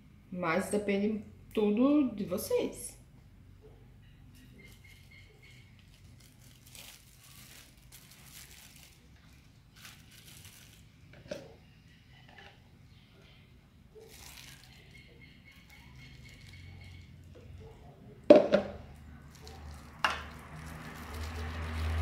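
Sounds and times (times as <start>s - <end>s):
plastic bag crinkling: 4.6s - 11.2s, 14.0s - 17.3s, 19.2s - 22.0s.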